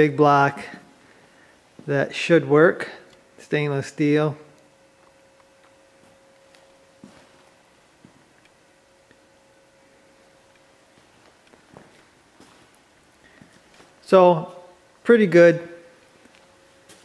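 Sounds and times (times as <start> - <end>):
faint steady hum: 0.0 - 17.0
soft footsteps: 5.0 - 9.4, 10.0 - 15.0, 15.9 - 17.0.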